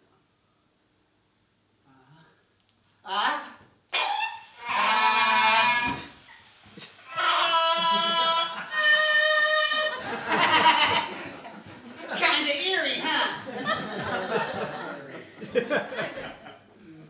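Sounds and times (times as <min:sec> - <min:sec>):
cartoon sound effects: 0:03.9 - 0:06.1, 0:07.0 - 0:10.0.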